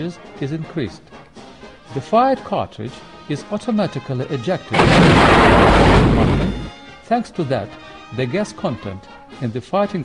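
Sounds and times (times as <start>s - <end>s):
tank gun firing blast: 4.7s - 6.7s.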